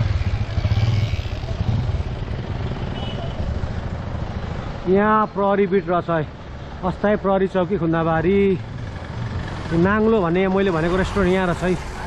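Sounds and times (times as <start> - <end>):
motorcycle engine running: 0.0 - 3.3
street traffic: 0.0 - 12.0
wind and road noise: 0.0 - 12.0.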